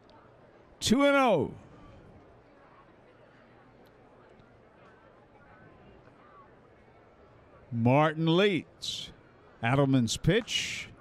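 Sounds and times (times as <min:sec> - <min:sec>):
faint crowd murmur: 0:00.0 - 0:11.0.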